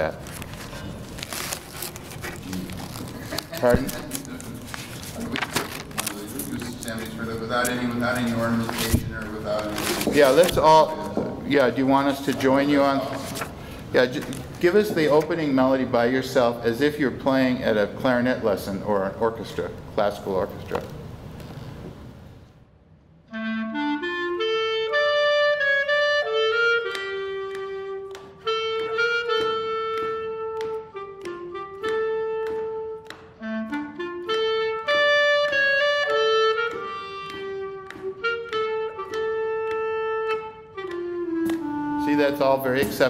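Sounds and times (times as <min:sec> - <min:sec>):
solo clarinet melody: 0:23.2 - 0:43.0.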